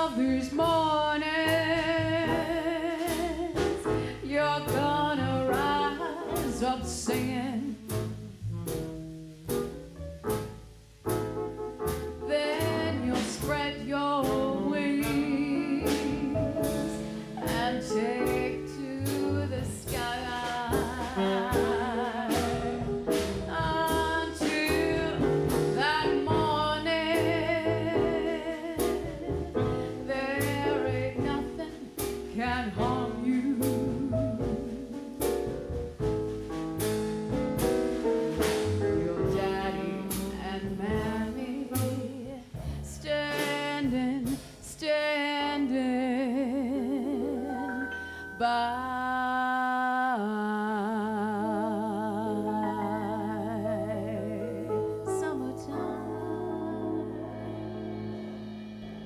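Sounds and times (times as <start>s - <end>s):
woman singing with vibrato: 0.0s - 7.8s, 12.3s - 22.9s, 23.5s - 34.9s, 39.0s - 57.9s
jazz band playing: 0.0s - 49.2s, 52.4s - 59.0s.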